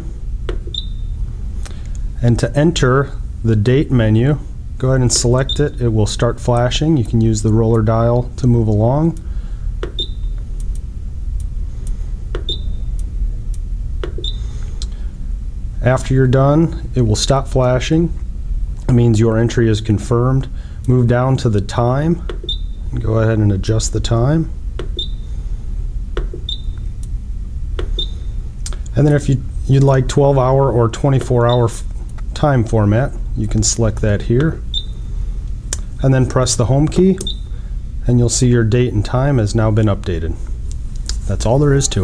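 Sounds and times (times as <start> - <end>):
steady low hum: 0.0 - 42.0
short high beeps: 10.0 - 10.4, 12.5 - 12.9, 26.5 - 26.8, 28.0 - 28.4
short high electronic beeps: 26.5 - 26.8, 28.0 - 28.4.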